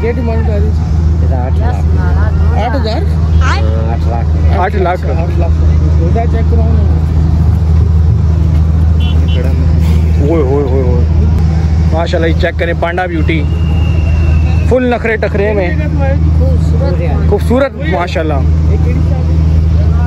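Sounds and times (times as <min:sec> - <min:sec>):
low engine drone: 0:00.0 - 0:20.0.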